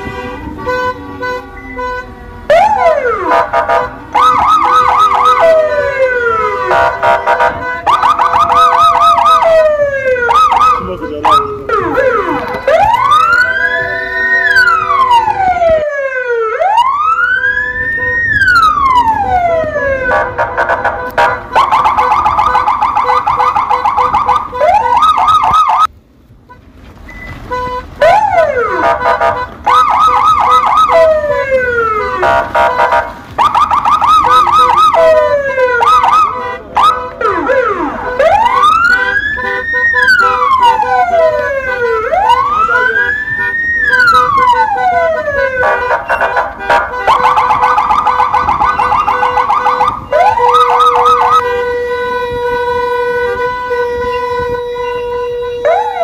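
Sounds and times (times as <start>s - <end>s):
electronic siren: 1.4s - 25.9s, 28.0s - 56.0s.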